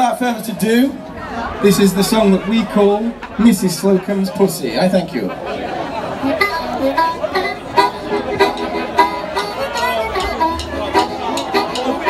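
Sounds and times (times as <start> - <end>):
amplified harmonica: 6.2 - 12.0
bass guitar: 6.2 - 12.0
steady drum beat: 7.6 - 12.0.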